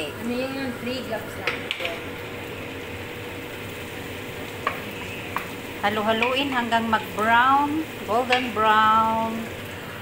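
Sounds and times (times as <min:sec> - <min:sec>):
onions sizzling in hot oil: 0:00.0 - 0:10.0.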